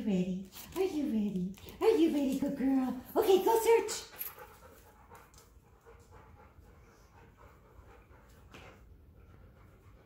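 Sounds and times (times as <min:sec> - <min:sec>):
dog panting: 0:01.6 - 0:10.0.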